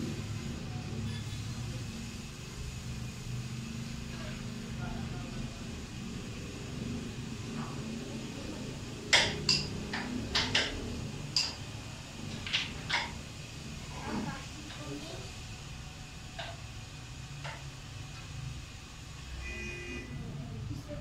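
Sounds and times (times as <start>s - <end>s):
low room murmur: 0.0s - 19.4s, 20.0s - 21.0s.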